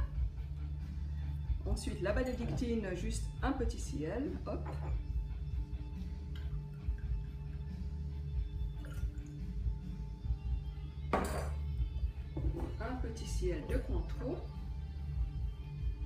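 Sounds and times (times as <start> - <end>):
background music with bass line: 0.0 - 16.0
liquid pouring: 8.8 - 9.5.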